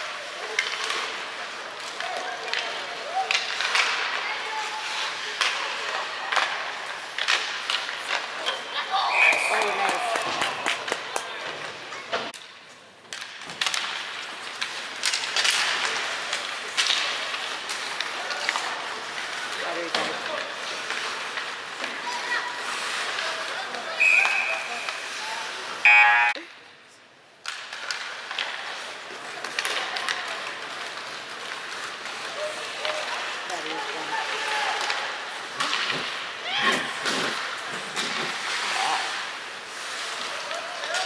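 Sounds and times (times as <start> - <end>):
skates sticks and puck clattering: 0.0 - 26.5, 27.3 - 41.0
loud buzzer: 25.9 - 26.4
short high tone: 25.9 - 26.4.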